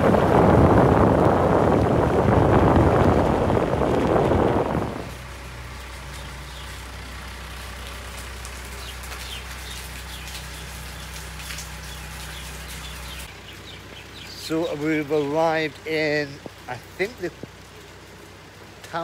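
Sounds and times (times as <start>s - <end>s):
low hum: 0.0s - 14.5s
road and rain noise in car: 0.0s - 19.0s.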